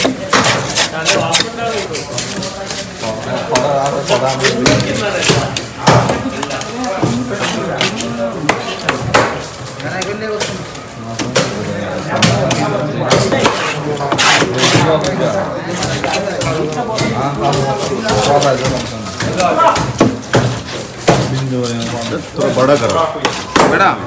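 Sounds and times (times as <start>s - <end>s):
chatter of voices: 0.0s - 24.0s.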